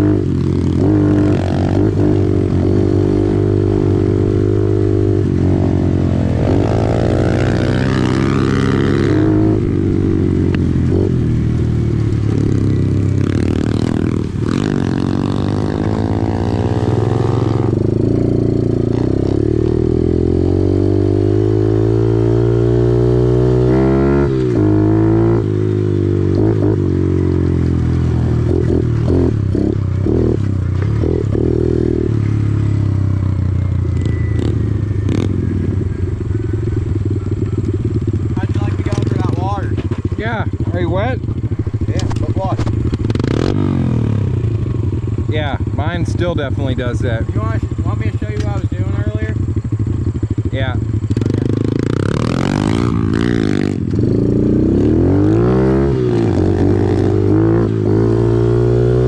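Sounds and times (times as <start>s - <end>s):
pit bike engine revving: 0.0s - 59.0s.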